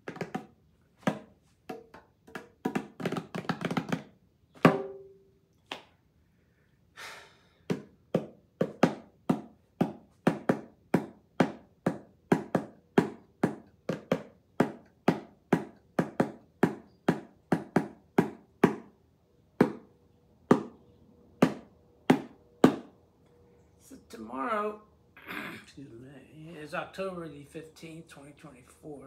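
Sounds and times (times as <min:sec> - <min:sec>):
bongo drums slapped by hand: 0:00.0 - 0:05.9, 0:07.7 - 0:19.0, 0:19.6 - 0:19.9, 0:20.5 - 0:20.8, 0:21.4 - 0:22.9.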